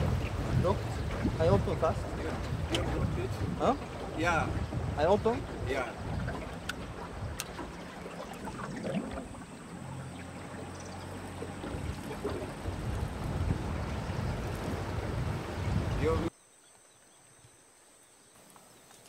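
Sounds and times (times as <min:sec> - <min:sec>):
wind on microphone: 0:00.0 - 0:09.8, 0:10.6 - 0:16.3
water washing against boat: 0:00.0 - 0:16.3.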